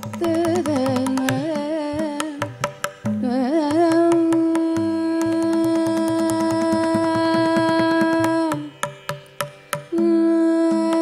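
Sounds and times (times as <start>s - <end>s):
drum strokes: 0.0s - 10.0s.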